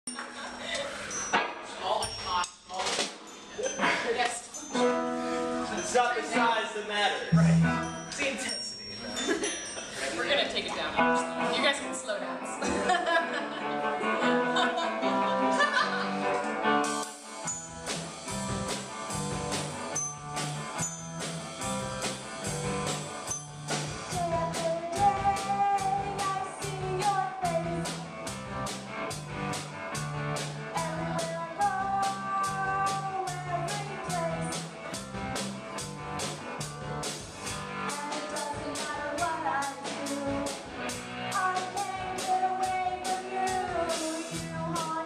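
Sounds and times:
laughter: 3.6 - 4.3, 9.2 - 9.9, 12.6 - 16.3
instrument holding a chord: 7.3 - 8.2
live rock band playing: 7.3 - 8.6, 10.9 - 12.6, 13.6 - 45.0
woman singing: 24.1 - 28.0, 30.7 - 34.6, 37.9 - 40.6, 41.3 - 45.0.

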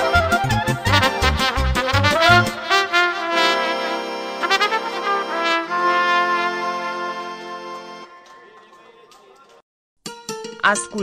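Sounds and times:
trumpet-led folk band: 0.0 - 8.4.

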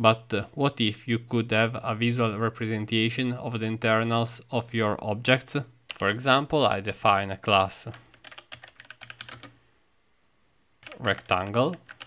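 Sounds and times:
typing on computer keyboard: 7.9 - 9.6, 10.8 - 12.0.

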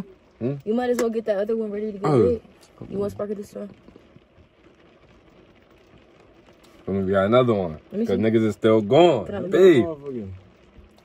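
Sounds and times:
man speaking: 0.4 - 0.6, 6.9 - 10.4.

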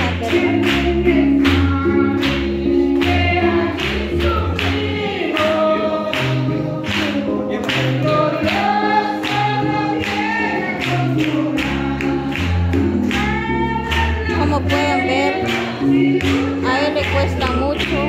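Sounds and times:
group singing gospel: 0.0 - 18.0.

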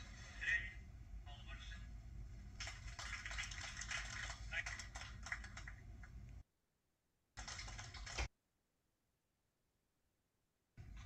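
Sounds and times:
recording hum: 0.0 - 6.4, 7.4 - 8.3, 10.8 - 11.0.

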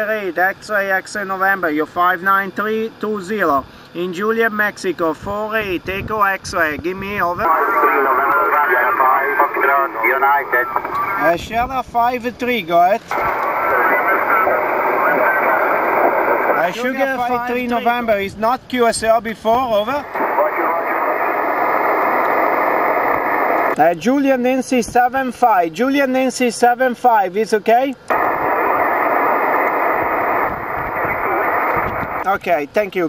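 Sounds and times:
faint radio voice: 7.4 - 11.4, 13.1 - 16.9, 19.9 - 21.8, 30.7 - 32.3
radio receiver hiss: 7.4 - 11.4, 13.1 - 17.1, 20.0 - 23.8, 28.1 - 32.3.

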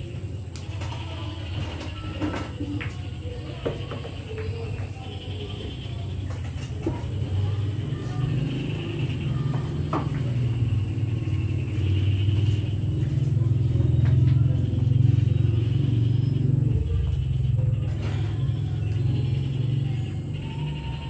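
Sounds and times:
faint hum: 0.0 - 21.0.

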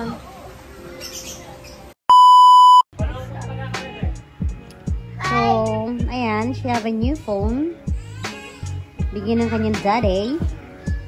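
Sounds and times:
electronic beep: 2.1 - 2.9
background music with a beat: 3.0 - 11.0.

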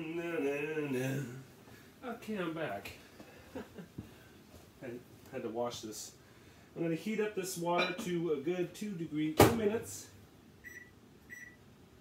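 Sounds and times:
microwave keypad beeps: 10.6 - 11.6.

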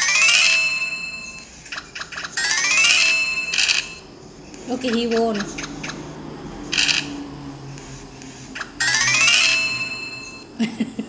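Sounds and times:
bright rising chime jingle: 2.3 - 4.8, 8.8 - 10.6.

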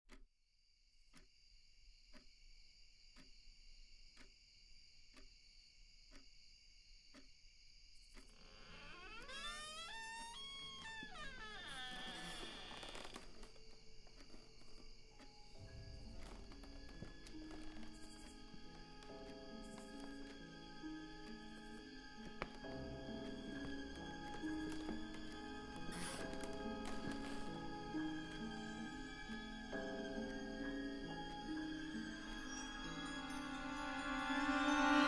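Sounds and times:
soft ticking: 1.0 - 1.4, 2.0 - 2.4, 5.0 - 5.4, 6.1 - 6.4, 7.1 - 34.9
eerie gliding music tones: 8.9 - 35.0.

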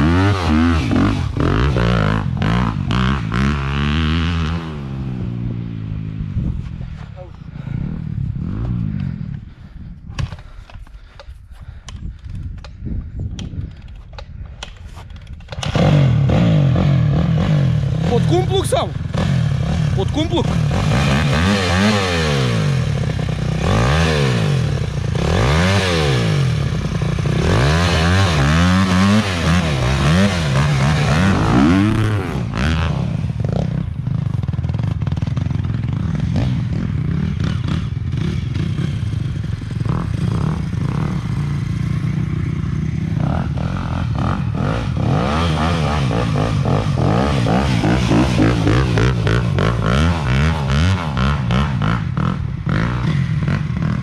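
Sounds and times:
dirt bike engine revving: 0.0 - 6.4, 15.6 - 54.0.

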